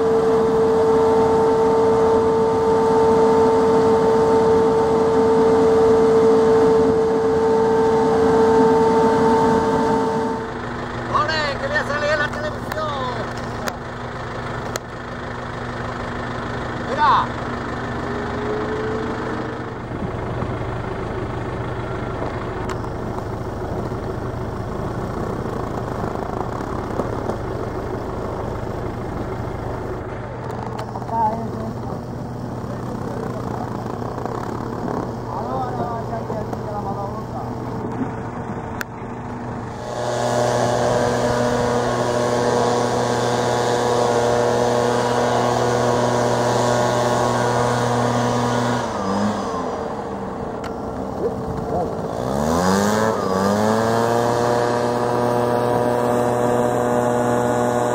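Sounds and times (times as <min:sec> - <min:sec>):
small engine running: 0:00.0 - 0:57.9.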